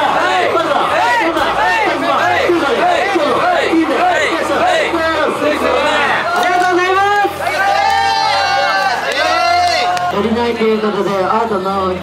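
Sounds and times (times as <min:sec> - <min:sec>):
men chanting together: 0:00.0 - 0:06.2.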